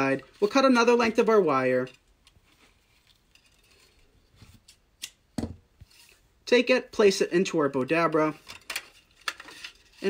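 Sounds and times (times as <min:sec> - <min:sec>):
wire snipping: 0:04.6 - 0:05.2.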